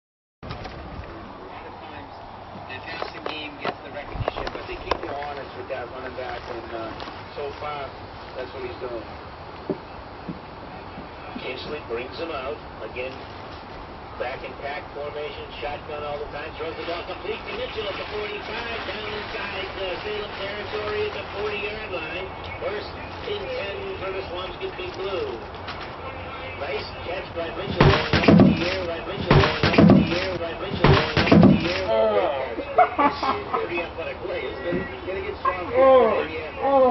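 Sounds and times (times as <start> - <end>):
footsteps on wooden deck: 9.6 - 11.5, 27.6 - 31.9
people laughing: 31.2 - 34.0.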